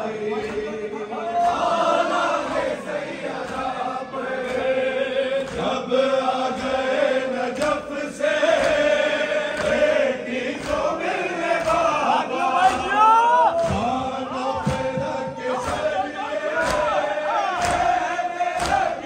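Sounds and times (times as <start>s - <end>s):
crowd of men chanting: 0.0s - 19.0s
leading voice chanting: 0.0s - 19.0s
sharp claps or thumps: 0.3s - 0.8s, 3.4s - 3.8s, 5.4s - 19.0s.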